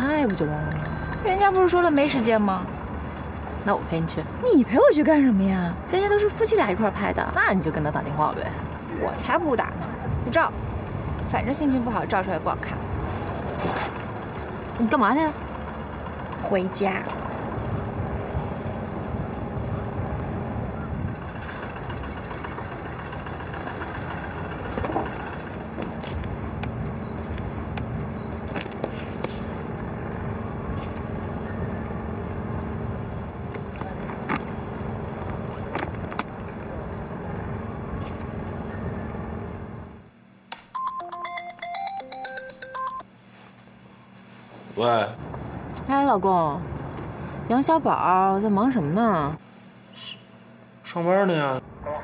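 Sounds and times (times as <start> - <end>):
harbour background rumble: 0.0 - 40.2
boat engines droning: 0.0 - 44.2, 44.8 - 52.0
wind: 0.0 - 52.0
mobile phone ringtone: 0.5 - 2.2, 40.7 - 43.1.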